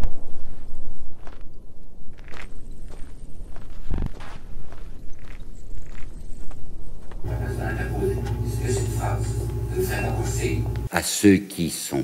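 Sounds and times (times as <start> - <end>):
footsteps in shoes: 0.3 - 9.6
steady low rumble: 7.2 - 10.9.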